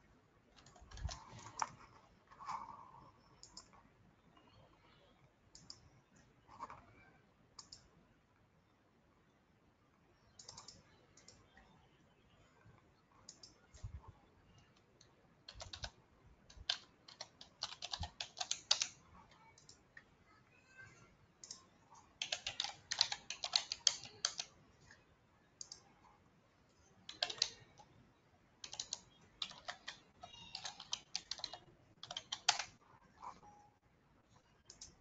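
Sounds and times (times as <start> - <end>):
computer keyboard typing: 0.5 - 5.9, 6.5 - 7.9, 10.3 - 11.8, 13.1 - 20.0, 21.4 - 25.0, 25.6 - 26.0, 27.0 - 28.0, 28.6 - 33.6, 34.5 - 35.0.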